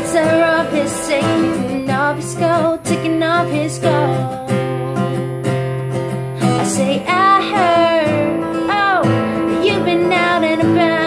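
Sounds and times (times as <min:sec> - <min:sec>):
woman singing: 0:00.0 - 0:05.7, 0:06.4 - 0:11.0
acoustic guitar strumming: 0:00.0 - 0:11.0.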